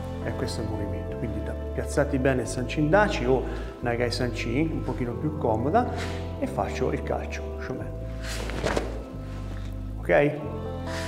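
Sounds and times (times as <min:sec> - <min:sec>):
background music: 0:00.0 - 0:11.0
bare foot landing on mat: 0:08.4 - 0:09.1
karate kick swish: 0:08.4 - 0:09.1.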